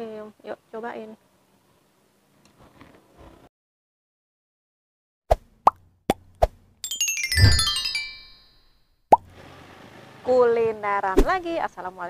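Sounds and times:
falling musical sweep: 6.9 - 8.5.

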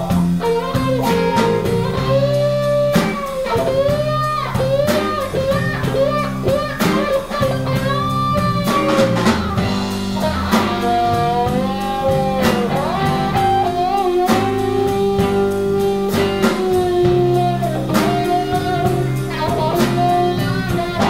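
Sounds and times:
drum kit: 0.0 - 21.0
electric bass: 0.0 - 21.0
lead electric guitar bending notes: 0.0 - 21.0
rhythm guitar: 0.0 - 21.0.

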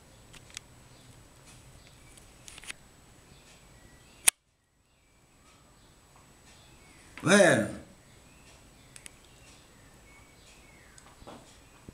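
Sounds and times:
sharp click: 4.2 - 4.4.

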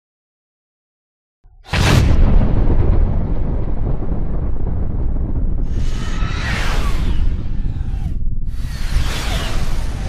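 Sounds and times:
boom with low rumble: 1.6 - 10.0
whoosh: 5.6 - 10.0.

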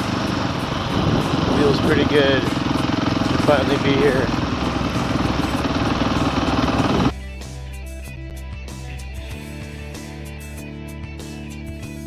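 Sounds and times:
dirt bike engine running: 0.0 - 7.1
background music: 0.0 - 12.0.

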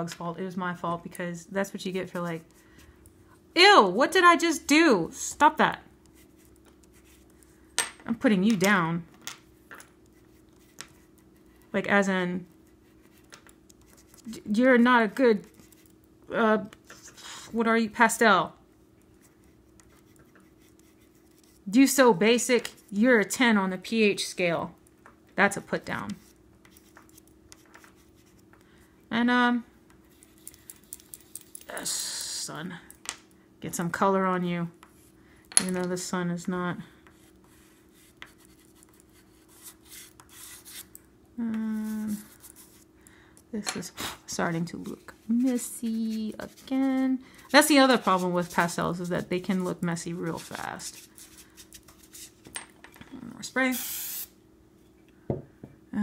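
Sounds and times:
person speaking: 14.2 - 15.5, 41.4 - 42.7, 43.5 - 51.0
pastel scratching on paper: 19.2 - 21.7, 37.1 - 40.9
aerosol spray can hissing: 53.7 - 54.3.

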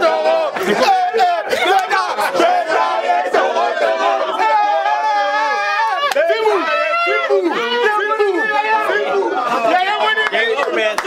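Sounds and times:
people laughing: 0.0 - 2.5, 8.9 - 11.0
group chatter: 0.0 - 11.0.

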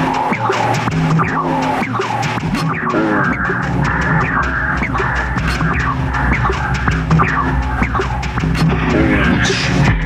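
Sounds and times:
experimental electronic music: 0.0 - 10.0.

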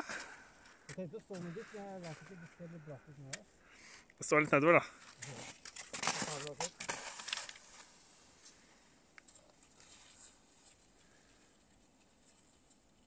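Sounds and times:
ski poles planting: 3.3 - 13.0
faint crunches in snow: 4.9 - 13.0
skis sliding over snow: 5.3 - 8.6, 9.6 - 11.4.

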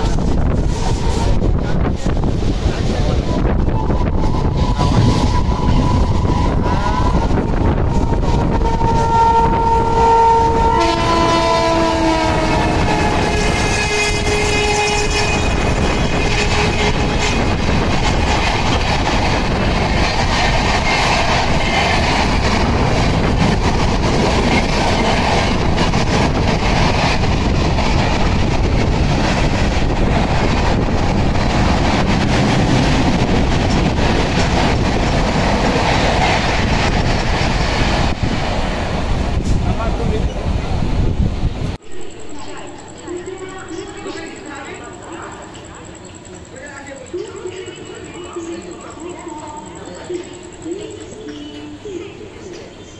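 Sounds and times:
train coaches rushing and clattering: 0.0 - 52.9
train horn: 3.7 - 17.7.

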